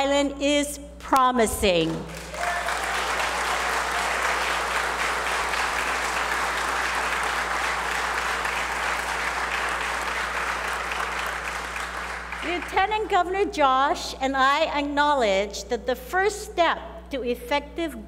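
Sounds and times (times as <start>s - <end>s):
audience applauding: 2.1s - 12.8s.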